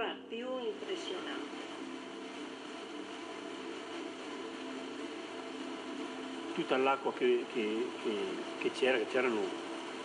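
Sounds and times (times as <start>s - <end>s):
room background hiss: 0.0s - 10.0s.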